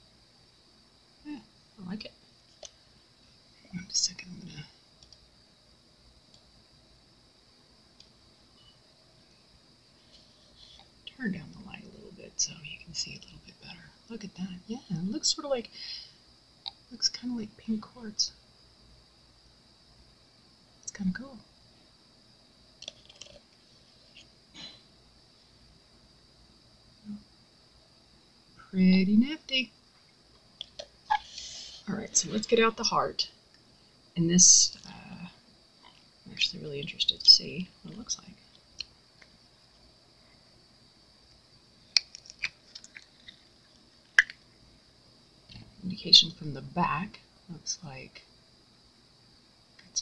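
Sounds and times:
faint high hiss: 0.0s - 50.0s.

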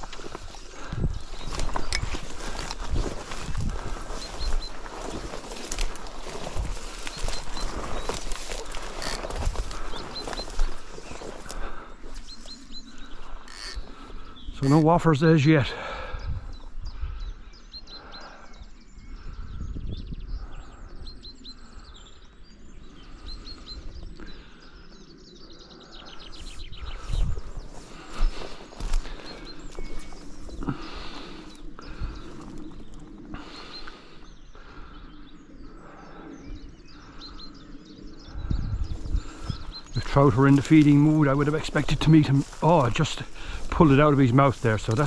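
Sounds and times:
wind rumbling on microphone: 0.0s - 14.8s, 15.9s - 45.0s
small birds chirping: 0.0s - 45.0s.

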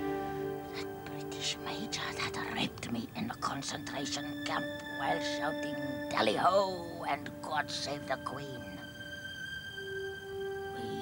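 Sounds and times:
soft music with held tones: 0.0s - 11.0s
woman whispering breathily: 0.7s - 3.1s.

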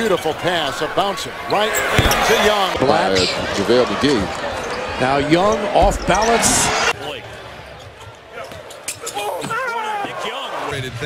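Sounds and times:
crowd noise hum: 0.0s - 11.0s
basketball bouncing on hardwood: 2.0s - 2.4s.

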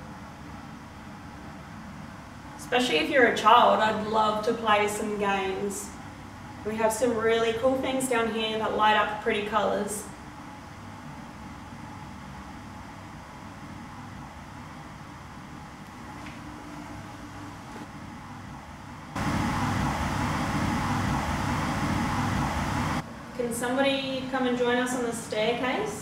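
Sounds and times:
low steady hiss and hum: 0.0s - 26.0s.

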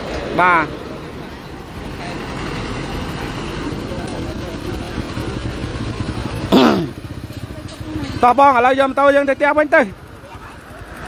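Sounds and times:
motorcycle passing by: 0.0s - 11.0s.

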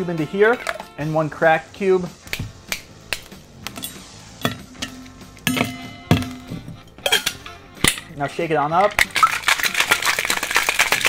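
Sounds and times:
metal tins knocking together: 0.5s - 0.9s, 3.8s - 8.2s, 8.8s - 11.0s
ice cubes clinking in metal shaker: 8.8s - 11.0s.

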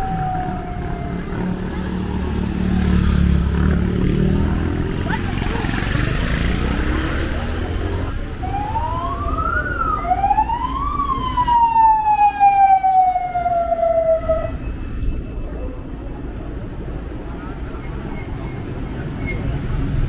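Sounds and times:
street traffic noise: 0.0s - 20.0s.

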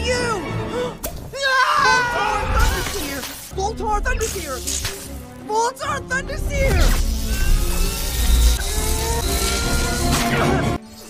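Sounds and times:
film music score: 0.0s - 11.0s
electricity crackling: 6.4s - 10.6s.

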